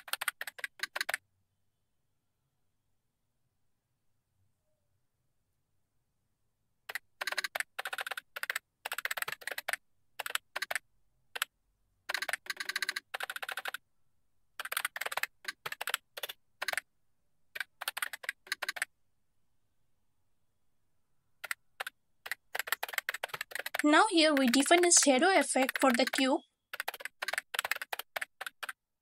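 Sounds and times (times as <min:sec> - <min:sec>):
computer keyboard typing: 0:00.0 - 0:01.2, 0:06.9 - 0:11.5, 0:12.1 - 0:13.8, 0:14.6 - 0:16.9, 0:17.5 - 0:18.9, 0:21.4 - 0:28.8.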